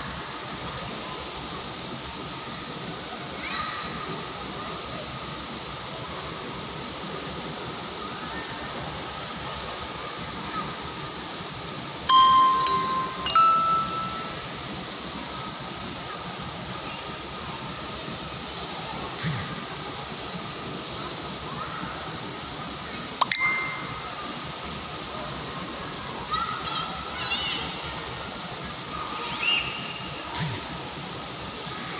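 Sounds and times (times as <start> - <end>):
bright ringing chime notes: 12.1 - 14.6, 23.2 - 24.2.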